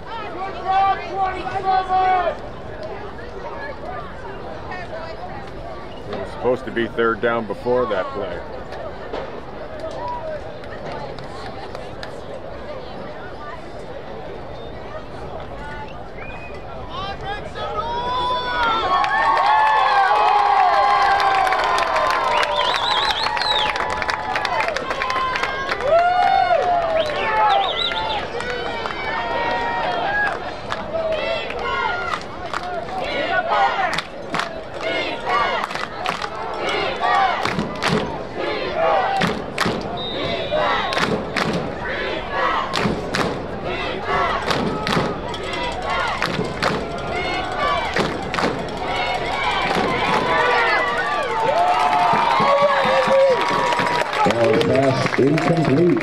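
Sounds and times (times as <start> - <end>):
crowd shouting and cheering: 0.0 - 56.0
sharp claps and knocks: 37.4 - 38.1, 39.2 - 39.9, 40.9 - 41.7, 42.7 - 43.4, 44.4 - 45.4, 46.2 - 47.0, 47.9 - 48.8.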